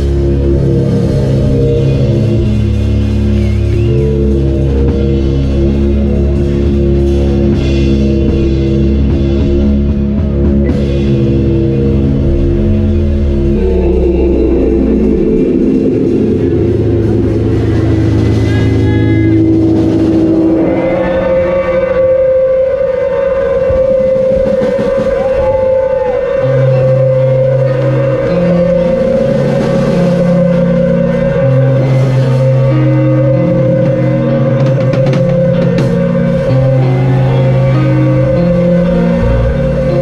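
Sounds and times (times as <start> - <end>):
bass notes: 0.0 - 40.0
drums: 0.0 - 40.0
electric guitar: 0.0 - 40.0
keyboard chords: 0.0 - 40.0.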